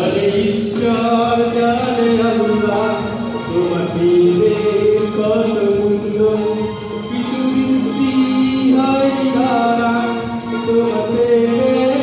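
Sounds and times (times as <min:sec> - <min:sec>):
acoustic guitar: 0:00.0 - 0:12.0
man singing into microphone: 0:00.0 - 0:12.0.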